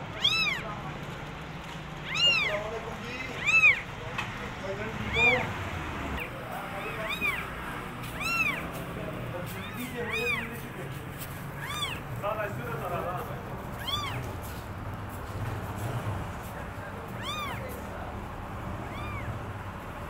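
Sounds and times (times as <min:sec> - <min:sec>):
kittens mewing: 0:00.0 - 0:00.8, 0:02.0 - 0:04.2, 0:04.8 - 0:10.8, 0:11.5 - 0:12.2, 0:13.7 - 0:14.4, 0:17.0 - 0:19.6.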